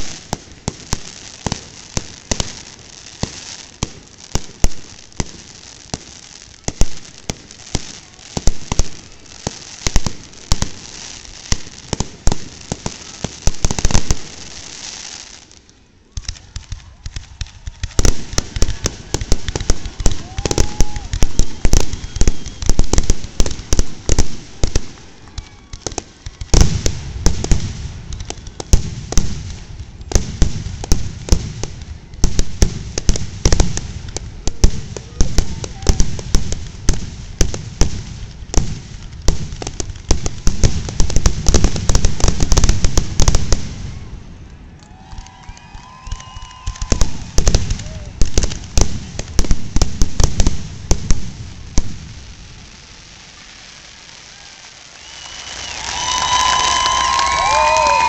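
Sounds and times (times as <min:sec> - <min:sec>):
fireworks bursting: 0:00.0 - 0:58.0.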